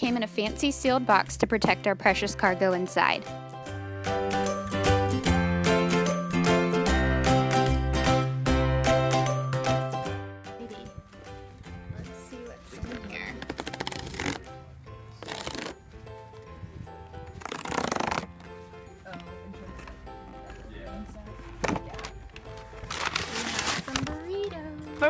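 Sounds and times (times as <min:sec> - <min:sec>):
background music: 0:00.0 - 0:25.0
cardboard tear strip ripping: 0:13.4 - 0:14.5, 0:15.2 - 0:15.8, 0:17.4 - 0:18.3, 0:22.9 - 0:24.0.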